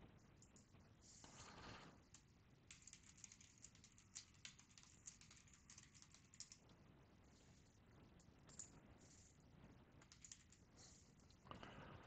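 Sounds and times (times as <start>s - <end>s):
computer keyboard typing: 1.4s - 6.7s, 10.0s - 10.7s.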